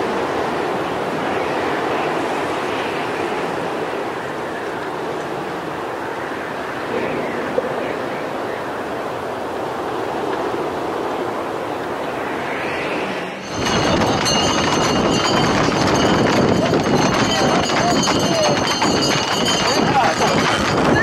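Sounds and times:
steady rushing noise: 0:00.0 - 0:21.0
hooves clattering on pavement: 0:13.5 - 0:21.0.

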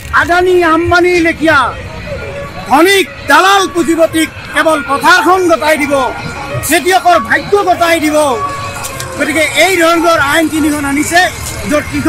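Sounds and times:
man speaking loudly: 0:00.1 - 0:01.8, 0:02.6 - 0:08.5, 0:09.1 - 0:12.0.

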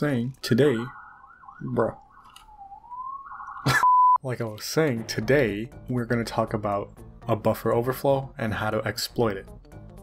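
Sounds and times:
emergency vehicle siren wailing: 0:00.6 - 0:03.8
steady test tone beep: 0:02.9 - 0:04.2.

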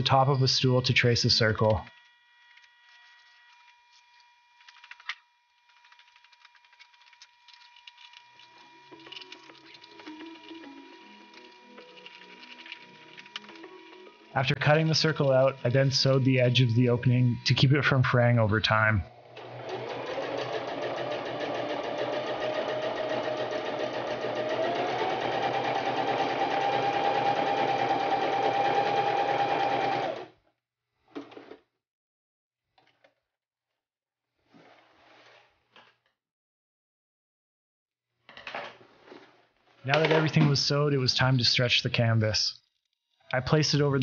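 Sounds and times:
electric sewing machine stitching: 0:01.4 - 0:18.0, 0:19.1 - 0:30.4.

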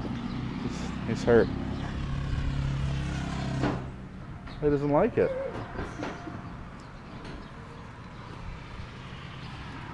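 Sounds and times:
vehicle engine humming: 0:00.0 - 0:09.9.

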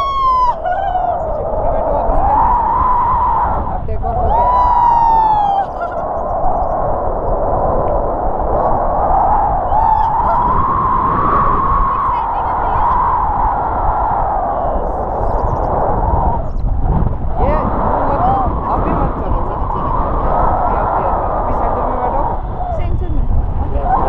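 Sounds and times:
person crying out high-pitched: 0:00.0 - 0:01.3, 0:04.3 - 0:06.0
wind rushing over microphone: 0:00.0 - 0:24.0.

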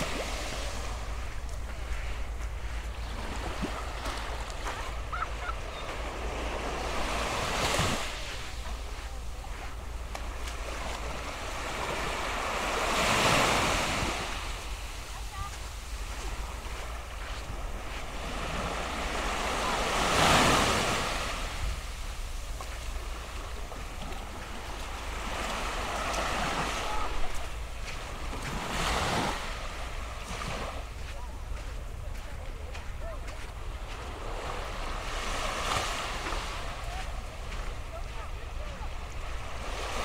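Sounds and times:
waves washing up a beach: 0:00.0 - 0:40.0.

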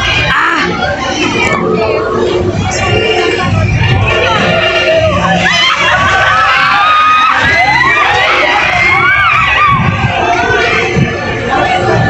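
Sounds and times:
ride riders screaming and shouting: 0:00.0 - 0:12.0.

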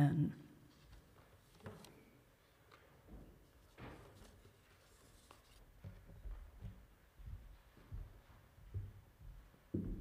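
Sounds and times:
paper rustling: 0:00.7 - 0:02.2, 0:03.5 - 0:06.0.

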